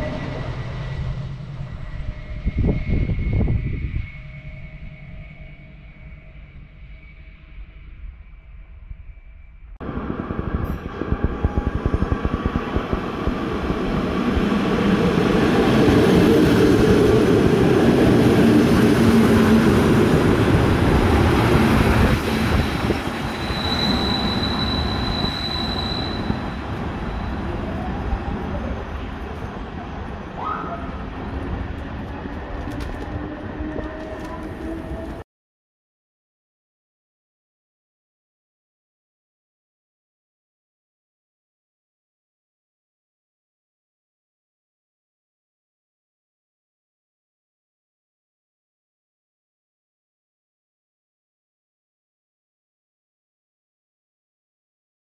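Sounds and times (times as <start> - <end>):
high steady squeal: 0.0 - 12.6, 22.0 - 27.6
electric train running on rails: 0.0 - 35.2.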